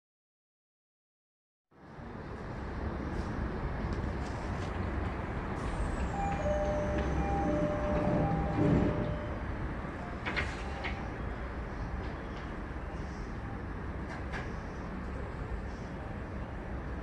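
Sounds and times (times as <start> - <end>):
standing train hum: 1.8 - 17.0
train doors shutting thump: 6.2 - 9.3
two-note electronic door chime: 6.2 - 9.4.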